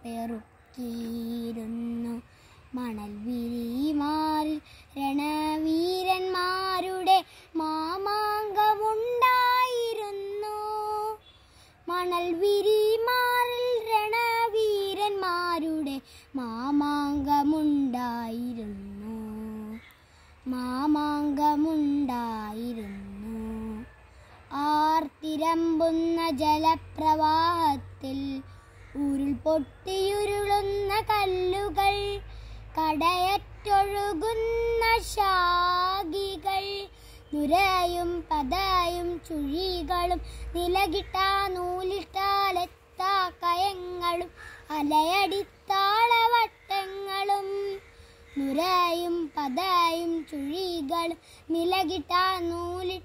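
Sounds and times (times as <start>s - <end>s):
boy singing unaccompanied: 0.0s - 53.0s.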